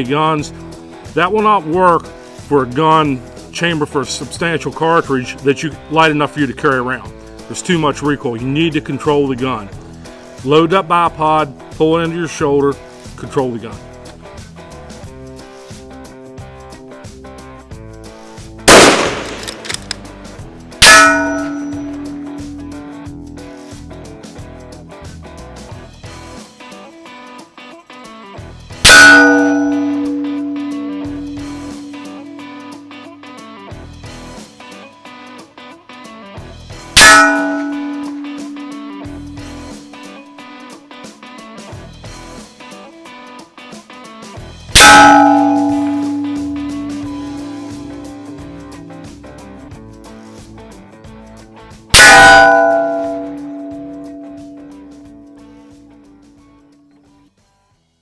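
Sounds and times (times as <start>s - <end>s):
steel target ringing: 18.7s - 19.7s, 20.8s - 24.1s, 28.9s - 33.9s, 37.0s - 40.8s, 44.8s - 49.9s, 52.0s - 56.2s
rifle shot: 18.7s - 20.1s.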